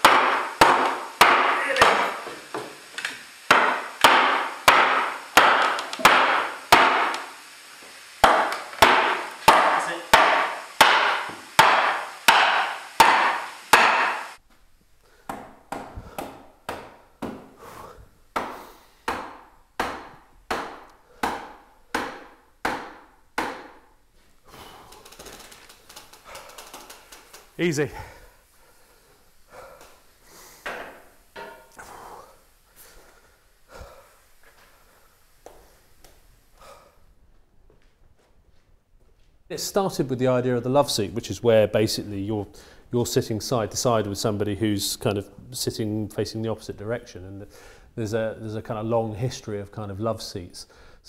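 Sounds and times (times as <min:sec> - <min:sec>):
hammer blows on wood: 0:00.0 - 0:02.6, 0:08.2 - 0:14.4, 0:18.4 - 0:23.8.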